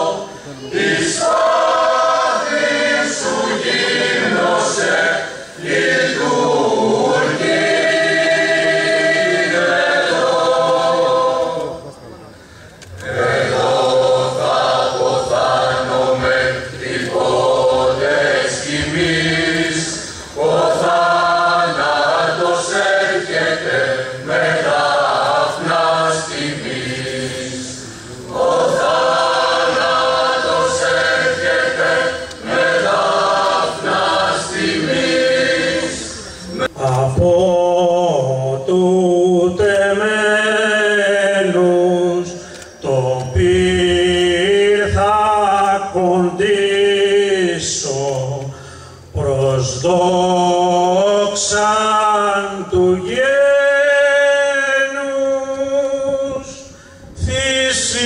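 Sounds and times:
choir singing: 0:00.0 - 0:12.0, 0:12.9 - 0:48.2, 0:49.2 - 0:56.6.

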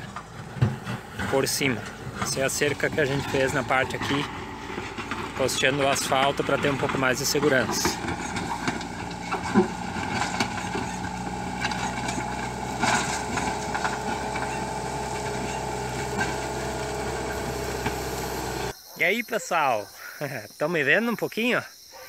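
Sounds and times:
bucket pushing soil: 0:00.0 - 0:18.7
diesel engine running: 0:00.0 - 0:18.7.

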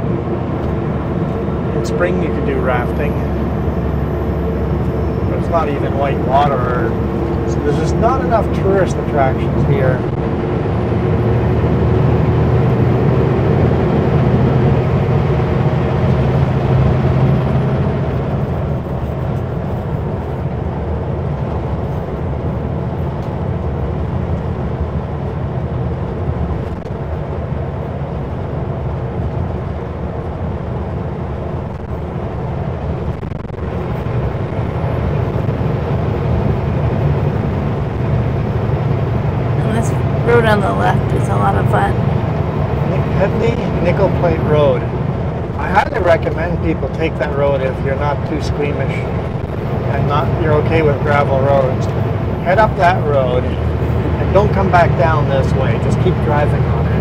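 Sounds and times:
road noise: 0:00.0 - 0:57.0
truck diesel engine droning: 0:00.0 - 0:57.0.

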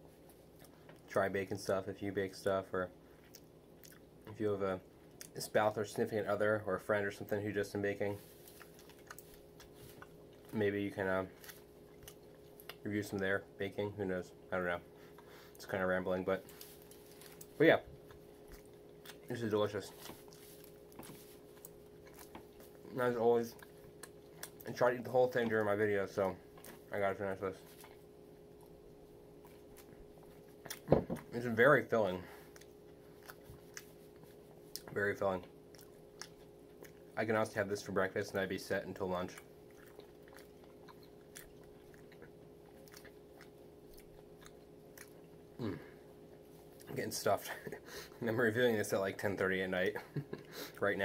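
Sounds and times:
quiet chewing: 0:00.0 - 0:01.2, 0:03.0 - 0:05.7, 0:06.3 - 0:51.0
faint steady hum: 0:00.0 - 0:51.0.

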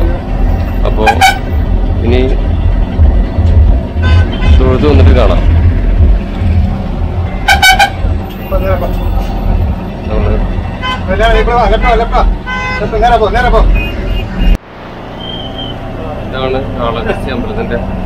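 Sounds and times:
bus diesel engine running: 0:00.0 - 0:12.4, 0:14.2 - 0:18.0.

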